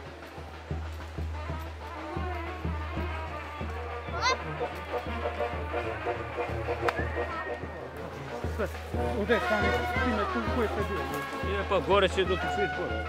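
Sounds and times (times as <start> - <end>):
brass band playing: 1.2 - 13.0
people talking: 4.0 - 4.7, 6.8 - 13.0.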